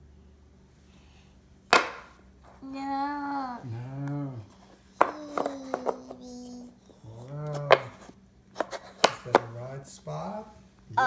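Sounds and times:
wooden pieces knocking on board: 1.7s - 2.2s, 5.0s - 6.2s, 7.4s - 9.6s
person humming: 3.2s - 7.9s.

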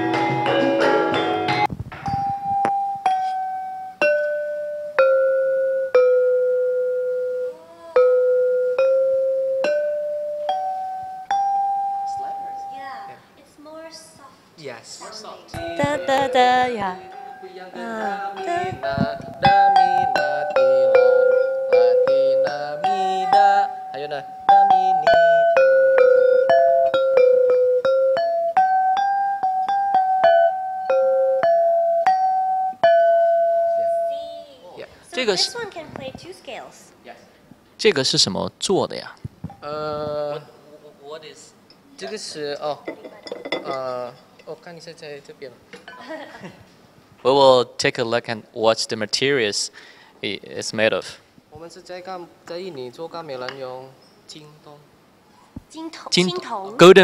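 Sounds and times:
gamelan ensemble playing: 0.0s - 1.7s, 2.6s - 12.8s, 15.6s - 18.8s, 19.4s - 34.4s
metallophone struck with mallet: 0.0s - 12.8s, 18.4s - 34.4s.

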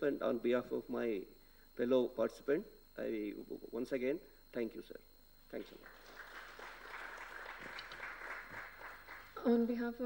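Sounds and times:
audience applauding: 5.7s - 9.4s.

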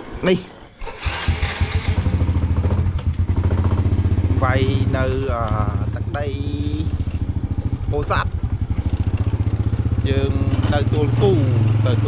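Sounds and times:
motorcycle engine starting and idling: 0.7s - 12.0s.

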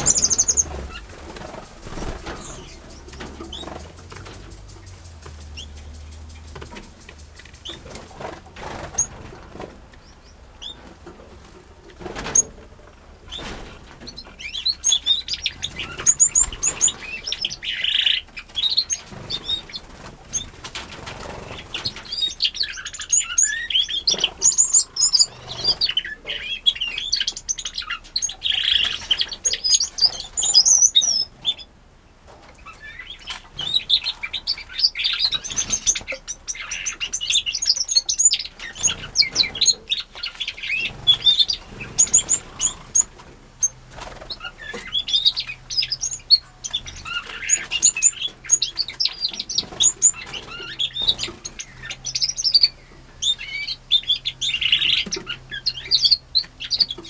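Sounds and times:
wings fluttering: 0.0s - 26.3s, 32.4s - 52.7s
small birds chirping: 0.0s - 57.0s.

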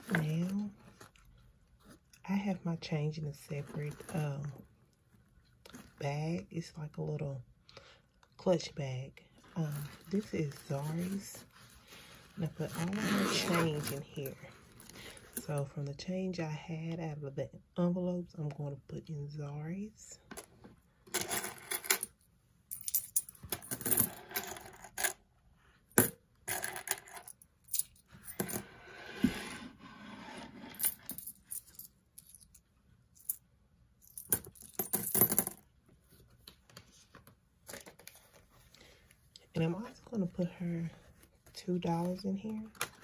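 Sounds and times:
coins shuffling: 21.1s - 22.1s, 22.7s - 25.2s, 26.0s - 28.7s, 30.6s - 32.6s, 34.0s - 35.6s
coins clinking into pouch: 21.1s - 25.1s, 30.8s - 32.5s, 34.1s - 35.6s.

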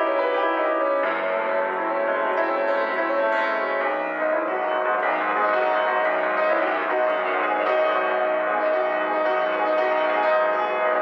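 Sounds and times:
grand piano classical music: 0.0s - 11.0s.

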